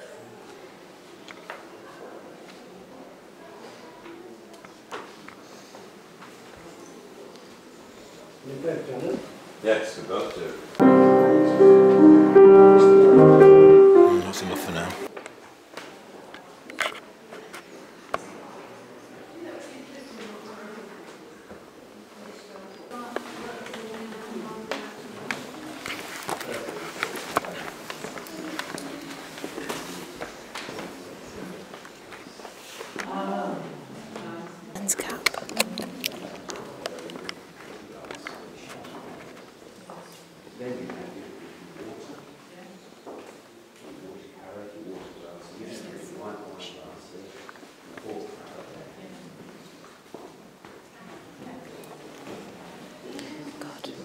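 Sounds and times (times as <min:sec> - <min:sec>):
indistinct chatter of people: 0:00.0 - 0:54.0
faint room hiss: 0:05.3 - 0:16.3.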